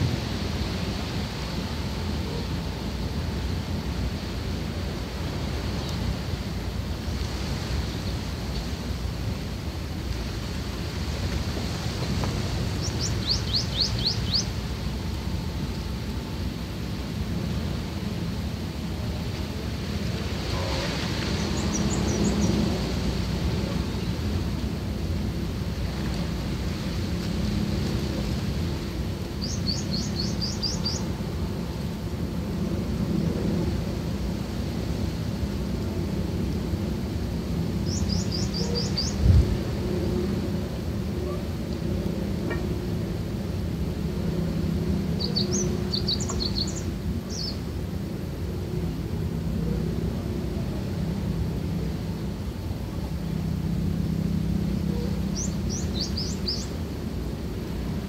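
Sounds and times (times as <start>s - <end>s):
low rumbling background noise: 0.0s - 58.0s.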